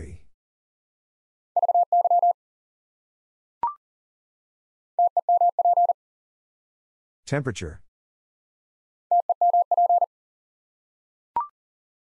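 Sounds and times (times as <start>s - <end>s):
morse code tone: 1.6s - 2.4s, 5.0s - 6.0s, 9.1s - 10.1s.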